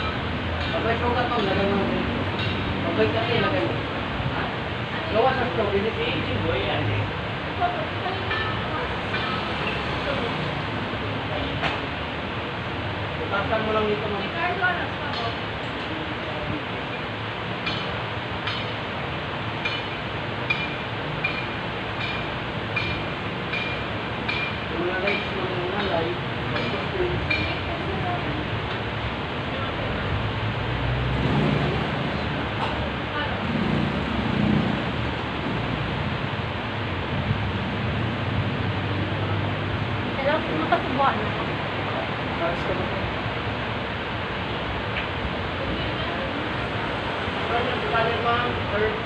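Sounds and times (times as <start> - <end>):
traffic noise: 0.0 - 49.0.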